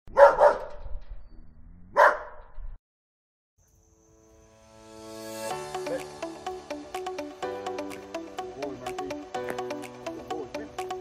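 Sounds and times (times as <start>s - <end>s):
dog barking: 0.1s - 0.8s, 1.9s - 2.4s.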